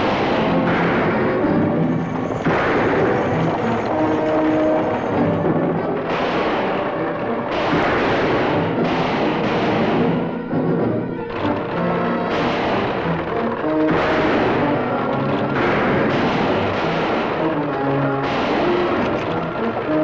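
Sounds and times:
galloping horses and stagecoach: 0:00.0 - 0:09.6, 0:10.2 - 0:20.0
dramatic orchestral music: 0:00.0 - 0:20.0
loud gunshots: 0:00.0 - 0:20.0.

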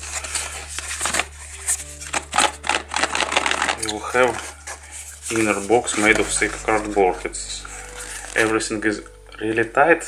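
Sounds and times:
cardboard box being handled: 0:00.0 - 0:07.3
background music: 0:00.0 - 0:10.0.

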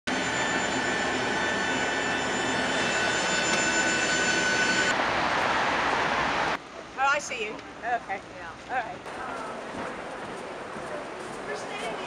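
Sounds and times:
high whining tones: 0:00.1 - 0:05.0
city street traffic: 0:00.1 - 0:12.0.

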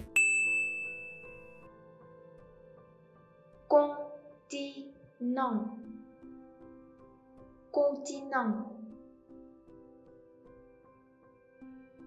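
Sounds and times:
bright chime: 0:00.0 - 0:01.6.

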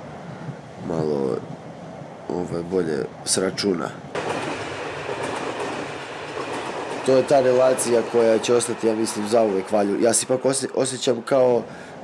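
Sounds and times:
train wheels on track: 0:04.1 - 0:11.7.

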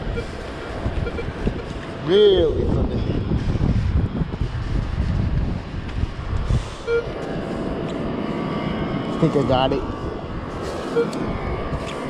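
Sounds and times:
metal detector beep: 0:00.0 - 0:00.4, 0:01.0 - 0:01.4, 0:06.8 - 0:07.1, 0:10.9 - 0:11.2
wind rumbling on microphone: 0:00.0 - 0:12.0.

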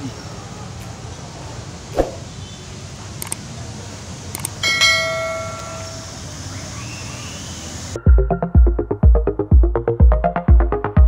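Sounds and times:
outdoor background noise: 0:00.0 - 0:08.0
bell chime: 0:04.6 - 0:06.4.

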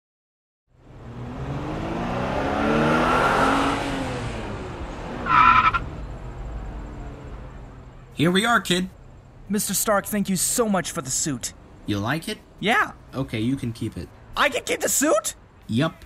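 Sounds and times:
sports car engine: 0:00.8 - 0:08.2
high tyre squeal: 0:05.2 - 0:06.1.

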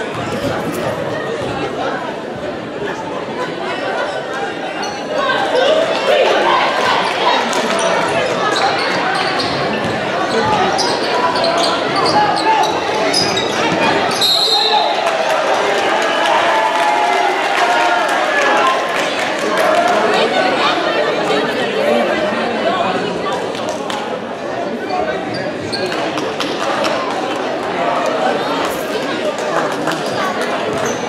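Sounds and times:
spectators talking and calling: 0:00.0 - 0:31.0
referee whistle: 0:14.2 - 0:15.0.

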